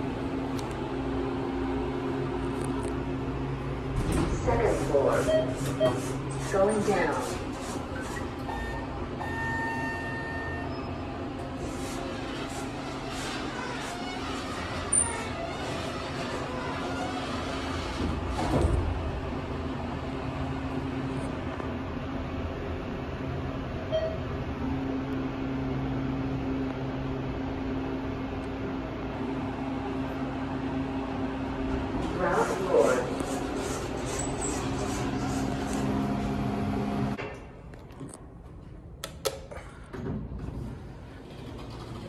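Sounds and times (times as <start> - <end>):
elevator cab hum: 0.0 - 37.2
elevator signal tone: 5.2 - 6.0, 8.5 - 11.1, 23.9 - 24.3.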